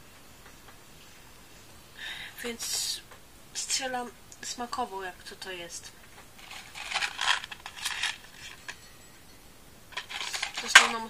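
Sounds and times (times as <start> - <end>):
packet rustling: 6.0 - 8.9, 9.9 - 11.0.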